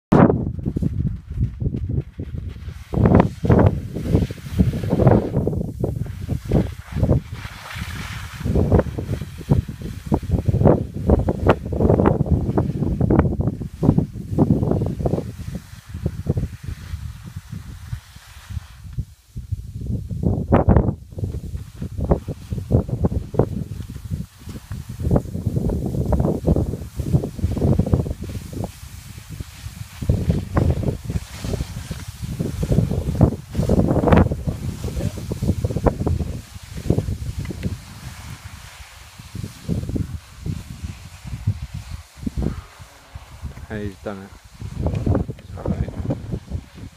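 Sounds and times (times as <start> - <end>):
wind buffeting microphone: 0.1 - 46.9.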